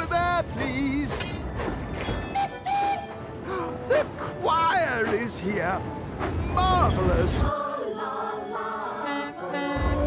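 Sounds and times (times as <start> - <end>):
steam locomotive rumbling: 0.0 - 6.9
steam whistle toots: 2.1 - 3.2.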